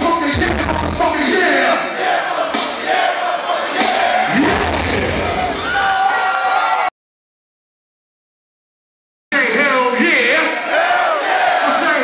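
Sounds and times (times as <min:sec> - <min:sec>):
concert crowd shouting and chanting: 0:00.0 - 0:06.9, 0:09.4 - 0:12.0.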